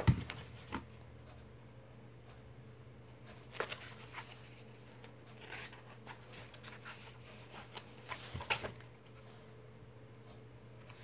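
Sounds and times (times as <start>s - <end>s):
paper pages rustling: 3.5s - 9.4s.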